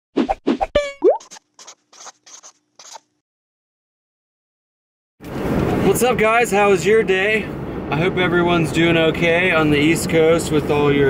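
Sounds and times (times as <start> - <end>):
short bursts of noise: 1.1 - 3.1.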